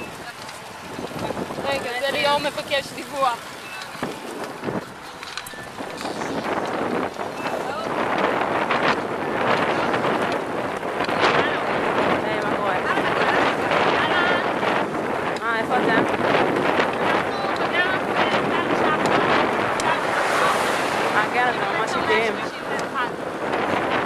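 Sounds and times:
wind rushing over microphone: 0.0 - 24.0.

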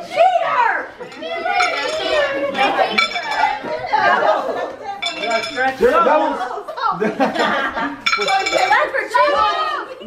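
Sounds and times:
people talking: 0.0 - 10.0
people laughing: 2.3 - 8.4.

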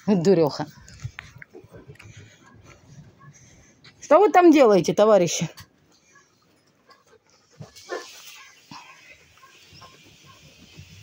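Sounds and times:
raccoons foraging on dirt: 0.0 - 11.0.

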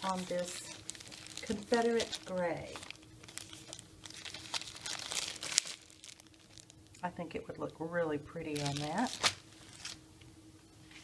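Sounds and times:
plastic bag crinkling: 0.0 - 7.0, 8.4 - 10.0.

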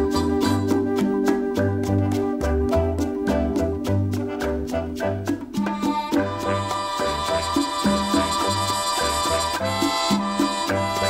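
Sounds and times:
latin dance-band music: 0.0 - 11.0.

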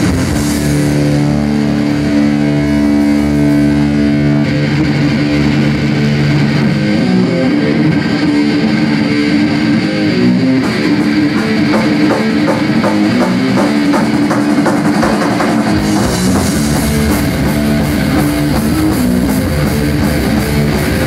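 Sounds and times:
bass guitar: 0.0 - 21.0
distorted electric guitar: 0.0 - 21.0.

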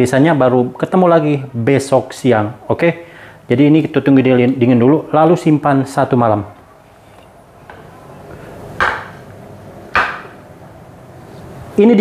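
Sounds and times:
faint background noise: 0.0 - 12.0
sharp knocks with ring: 9.9 - 10.4.

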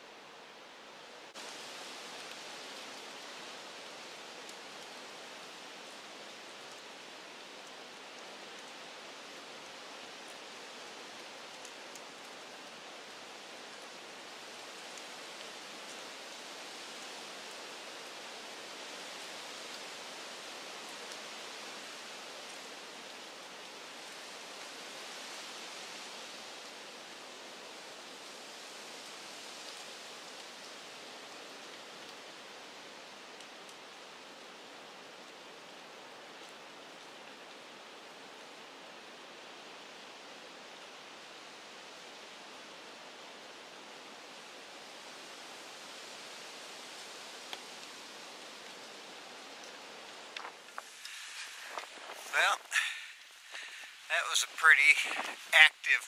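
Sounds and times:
wind rustling through leaves: 0.0 - 56.0.

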